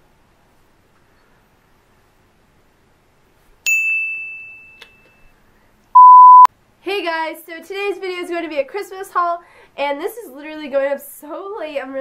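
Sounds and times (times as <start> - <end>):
loud steady beep: 6.0 - 6.5.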